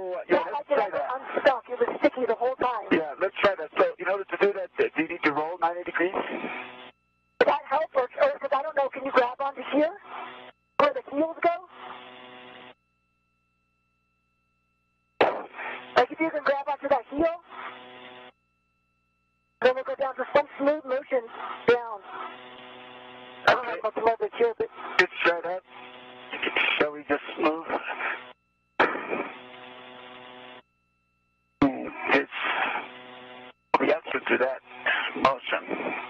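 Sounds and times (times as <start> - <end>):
voices over tinny radio: 0.0 - 6.8, 7.4 - 12.1, 15.2 - 18.1, 19.6 - 30.2, 31.6 - 36.0
faint steady hum: 0.0 - 36.0.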